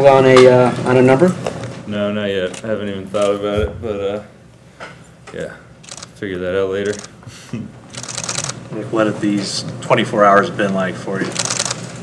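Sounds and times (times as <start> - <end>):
camera shutter clicks: 5.8 - 6.1, 7.9 - 8.6, 11.3 - 12.0.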